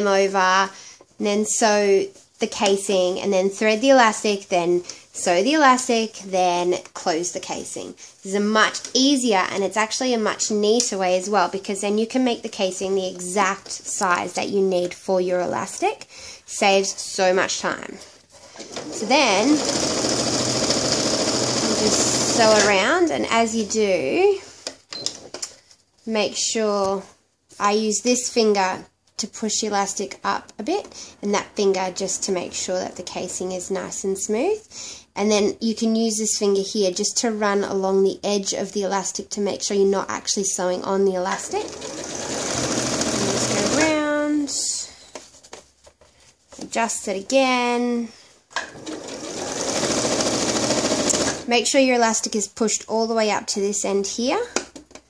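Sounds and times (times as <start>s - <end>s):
sewing machine running: 18.6s - 22.8s, 41.5s - 43.9s, 48.7s - 51.5s.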